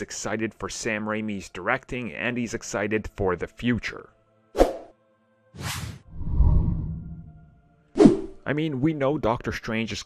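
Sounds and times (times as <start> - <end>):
low rumbling swell: 6.1 - 7.6
quick whoosh: 8.0 - 8.4.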